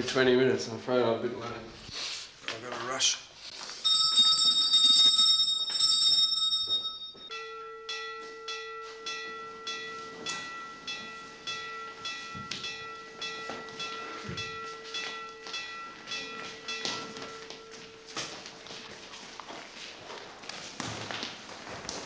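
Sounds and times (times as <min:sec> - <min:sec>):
wake-up bell ringing: 0:03.8 - 0:19.4.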